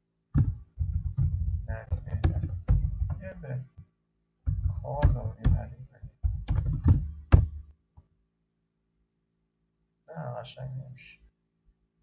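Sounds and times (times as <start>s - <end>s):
keyboard keystrokes: 0.4s - 3.3s, 4.5s - 7.6s.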